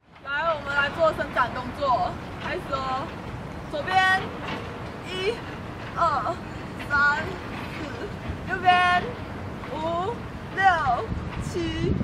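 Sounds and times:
outdoor background hiss: 0:00.0 - 0:12.0
woman counting aloud: 0:00.3 - 0:03.1, 0:03.7 - 0:04.4, 0:05.0 - 0:12.0.

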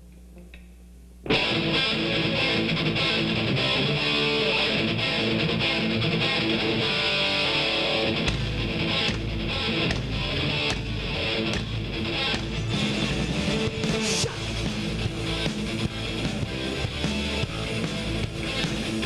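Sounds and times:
electric guitar: 0:01.2 - 0:19.0
drums and bass: 0:01.3 - 0:19.0.

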